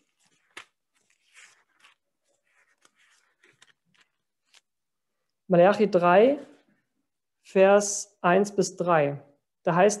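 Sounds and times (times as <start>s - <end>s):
thin pages rustling: 0.0s - 4.9s.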